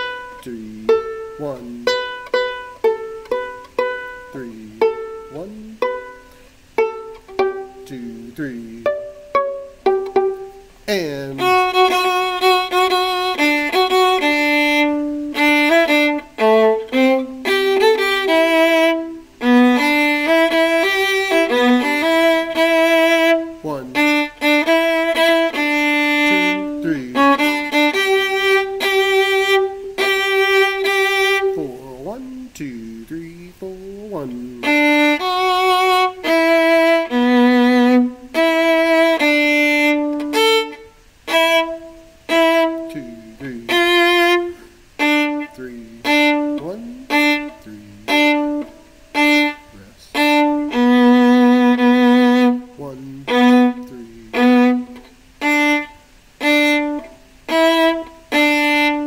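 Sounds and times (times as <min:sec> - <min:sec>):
solo viola bowed: 0:00.0 - 0:59.0.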